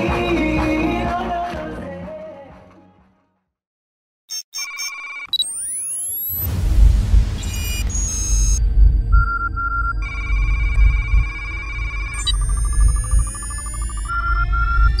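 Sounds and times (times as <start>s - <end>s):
short electronic beeps: 4.3s - 6.4s, 7.4s - 15.0s
deep low rumble: 6.5s - 15.0s.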